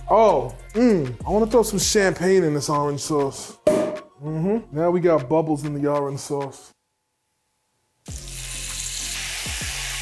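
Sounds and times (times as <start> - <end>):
sauce sizzling in a hot pan: 8.0 - 10.0.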